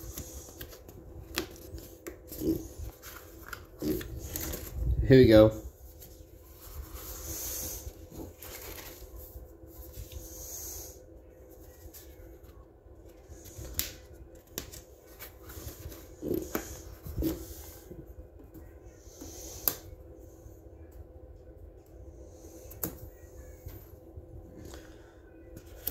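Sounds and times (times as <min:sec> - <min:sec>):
paper rustling: 0:00.1 - 0:04.8, 0:05.9 - 0:10.2.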